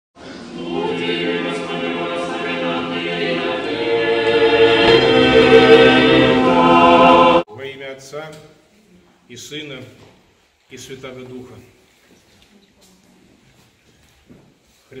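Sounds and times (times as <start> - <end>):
unaccompanied choir singing: 0.2 - 7.5.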